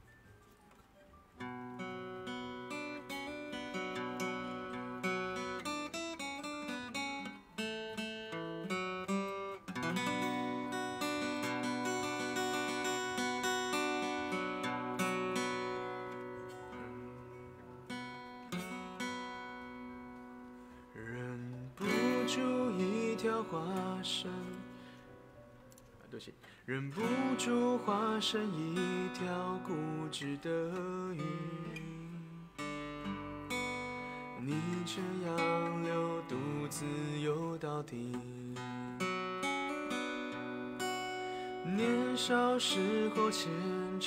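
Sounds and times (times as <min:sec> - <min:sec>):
acoustic guitar playing: 0:00.0 - 0:44.0.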